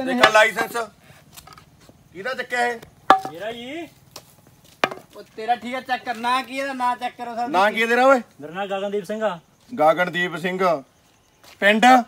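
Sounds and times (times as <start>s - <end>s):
men speaking: 0.0s - 1.2s, 2.1s - 4.1s, 4.9s - 12.0s.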